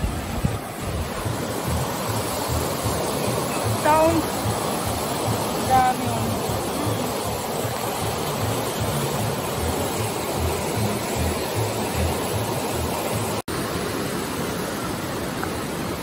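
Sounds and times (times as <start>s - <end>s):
river rushing over rocks: 0.0s - 16.0s.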